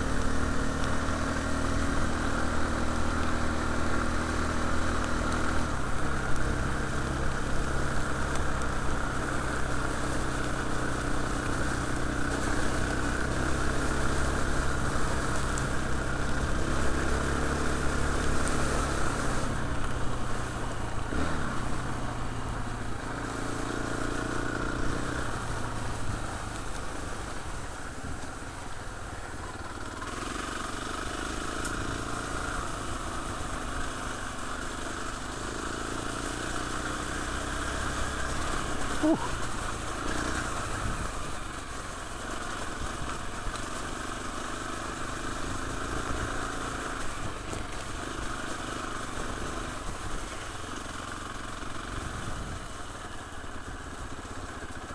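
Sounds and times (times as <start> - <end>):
trail bike engine running: 0.0 - 54.9.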